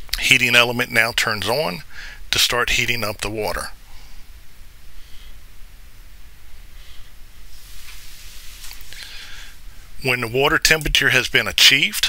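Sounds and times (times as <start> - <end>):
faint recording hiss: 0.0 - 12.0
soft noise burst: 0.0 - 12.0.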